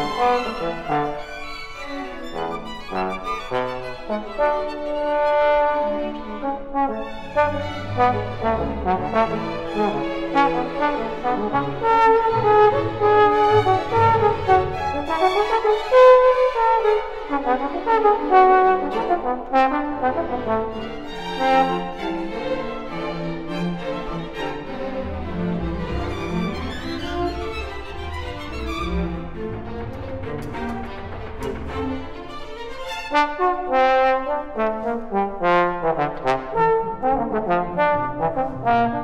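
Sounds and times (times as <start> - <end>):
string orchestra: 0.0 - 39.0
trombone melody: 2.2 - 22.0, 33.0 - 39.0.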